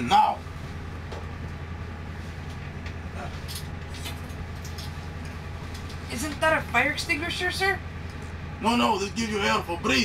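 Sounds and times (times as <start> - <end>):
equipment humming: 0.0 - 10.0.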